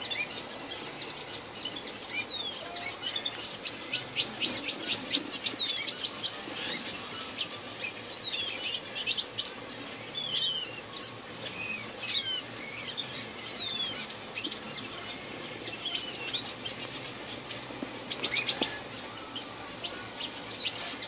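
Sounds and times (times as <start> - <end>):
finches and canaries chirping: 0.0 - 21.0.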